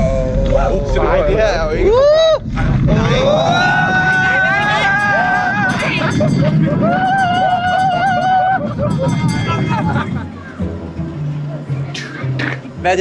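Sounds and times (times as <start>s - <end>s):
riders screaming: 0.0s - 8.8s
roller coaster rumbling on track: 0.0s - 13.0s.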